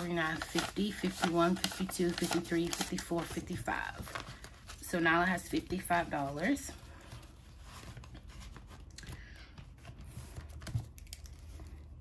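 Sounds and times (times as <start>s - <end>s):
paper and plastic rustling: 0.0s - 12.0s.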